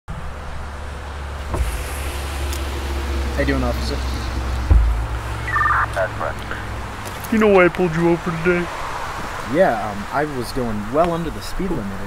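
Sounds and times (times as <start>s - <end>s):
car engine low rumble: 0.1s - 12.0s
short thump: 4.6s - 5.2s.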